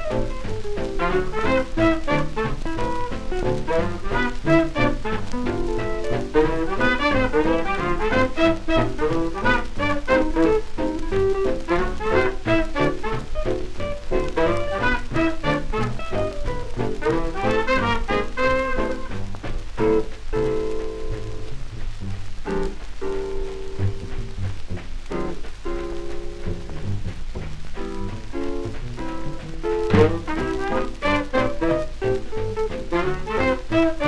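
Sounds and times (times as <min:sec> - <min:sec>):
record surface crackle: 0:00.0 - 0:34.0
swing band playing: 0:00.0 - 0:34.0.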